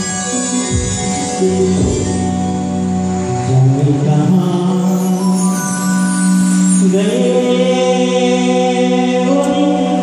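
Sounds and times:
man singing into microphone: 0:03.3 - 0:10.0.

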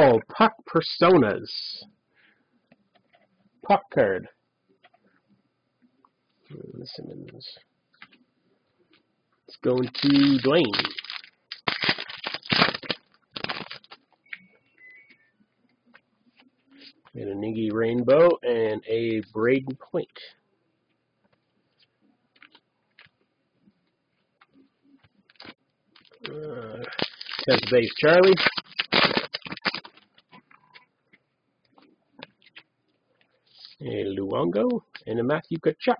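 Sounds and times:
card pack wrapper crinkling and tearing: 0:09.6 - 0:14.0, 0:25.3 - 0:30.1.

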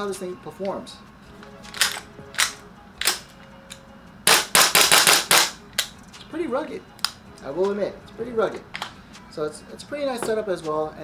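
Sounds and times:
airsoft rifle shots: 0:04.3 - 0:05.6.

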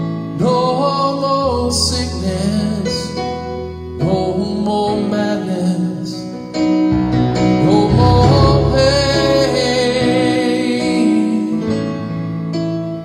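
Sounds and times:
man singing worship song: 0:00.0 - 0:03.4, 0:04.0 - 0:06.5, 0:07.6 - 0:12.1
instrumental accompaniment: 0:02.4 - 0:13.0.

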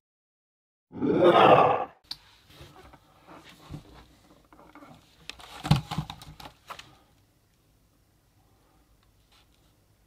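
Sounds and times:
plastic blister packs rustling: 0:05.3 - 0:06.9.

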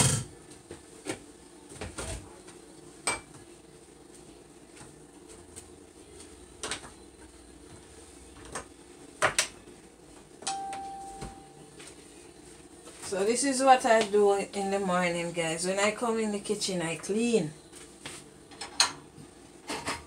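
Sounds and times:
dish ringing tone: 0:10.4 - 0:11.6
dishes clinking and knocking: 0:18.6 - 0:20.0.

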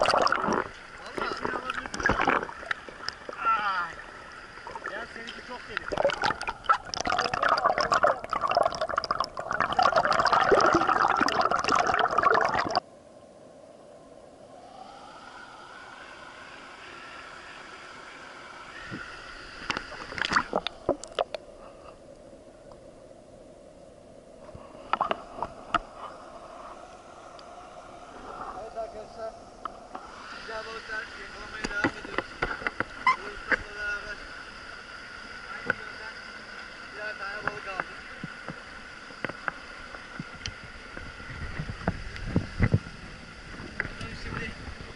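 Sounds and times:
rushing stream water: 0:00.0 - 0:12.8
muffled underwater hiss: 0:00.0 - 0:44.9.

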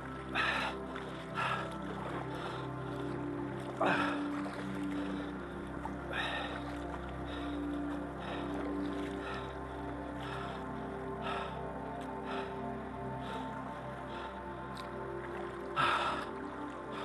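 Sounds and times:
kayak paddle swishing water: 0:00.0 - 0:12.5
background music: 0:00.0 - 0:17.0.

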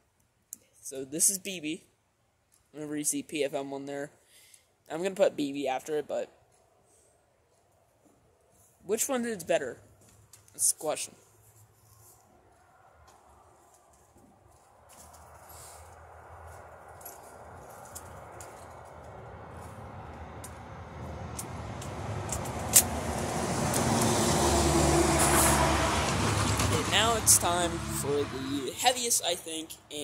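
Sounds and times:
vehicle engine approaching: 0:11.5 - 0:29.8
sharp click: 0:21.3 - 0:23.0.

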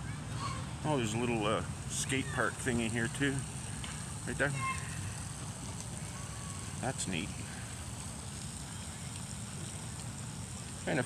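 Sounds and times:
faint high hiss: 0:00.0 - 0:11.0.

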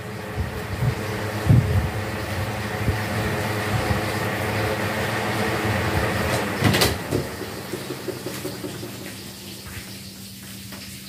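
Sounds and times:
electric fans whirring: 0:00.0 - 0:11.0.

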